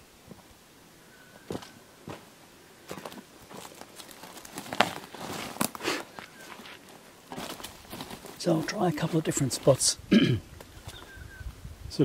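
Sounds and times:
man clearing his throat: 0:10.1 - 0:10.5.

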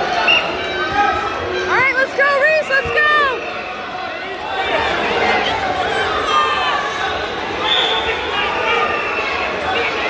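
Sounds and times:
spectators chattering: 0:00.0 - 0:10.0.

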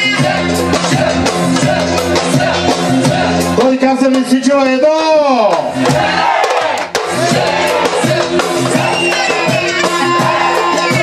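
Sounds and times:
dance music: 0:00.0 - 0:11.0
group of voices shouting: 0:05.8 - 0:11.0.

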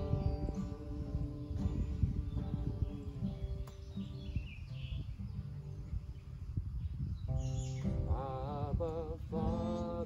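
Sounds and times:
acoustic guitar played softly: 0:00.0 - 0:10.0
birds chirping: 0:00.0 - 0:10.0.

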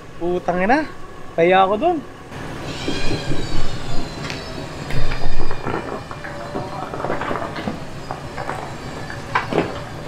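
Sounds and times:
high mechanical whine: 0:00.0 - 0:10.0.

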